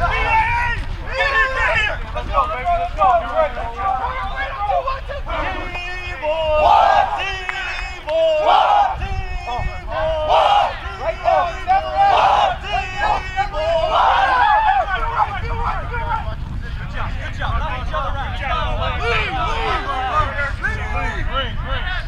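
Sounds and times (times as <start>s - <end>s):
players shouting and yelling: 0.0s - 22.0s.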